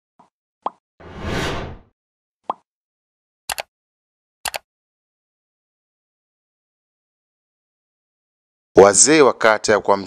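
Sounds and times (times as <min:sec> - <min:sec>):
whoosh: 0:01.0 - 0:01.9.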